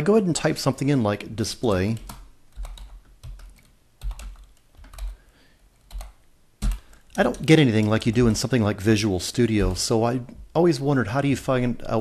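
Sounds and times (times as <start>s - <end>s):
keyboard keystrokes: 1.9s - 5.2s, 5.9s - 8.4s.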